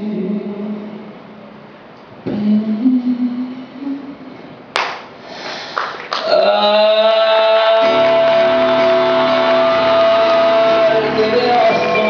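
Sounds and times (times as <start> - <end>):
male singer with band: 6.2 - 12.0.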